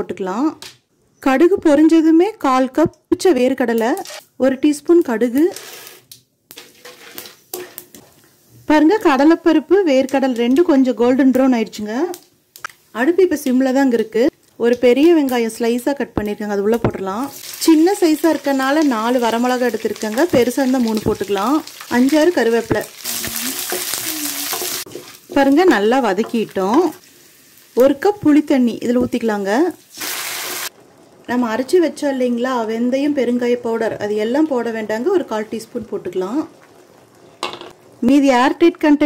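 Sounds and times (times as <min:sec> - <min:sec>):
peanuts sizzling in oil: 0:04.9 - 0:33.4
wooden spatula stirring: 0:22.6 - 0:25.5.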